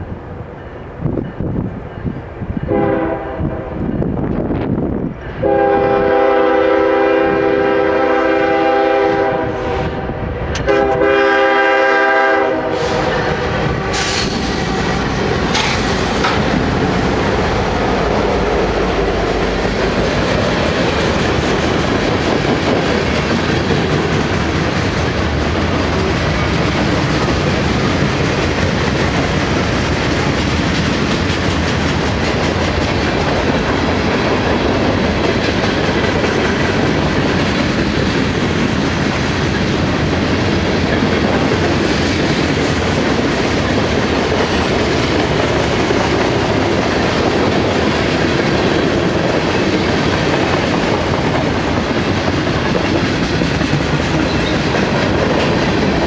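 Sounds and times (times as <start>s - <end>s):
freight train wheels on rail: 0.0s - 56.0s
train horn blasts: 2.7s - 3.8s, 5.4s - 14.2s.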